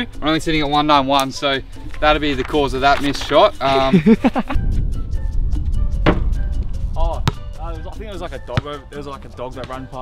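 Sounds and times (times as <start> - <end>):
basketball knocking on rim: 6.1 - 6.3.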